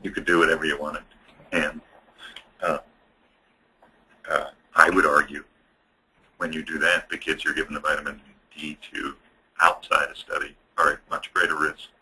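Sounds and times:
man speaking: 0.0 - 3.0, 4.2 - 5.5, 6.4 - 12.0.

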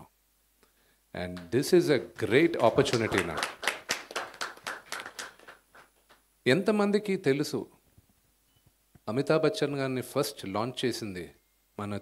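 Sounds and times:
small audience clapping: 1.3 - 6.2.

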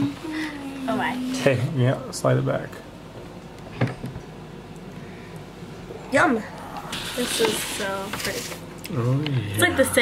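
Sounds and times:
pie server scraping foil tin: 6.9 - 8.6.

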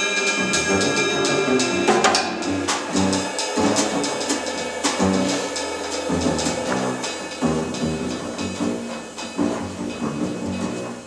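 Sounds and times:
drum kit playing: 0.0 - 11.0
piano: 0.0 - 11.0
double bass: 0.5 - 11.0.

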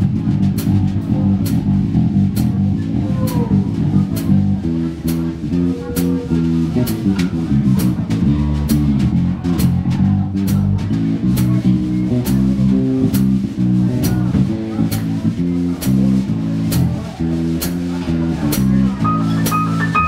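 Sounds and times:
drum kit cymbal beat: 0.0 - 20.0
walking electric bass: 0.0 - 20.0
electric guitar line: 18.5 - 20.0.

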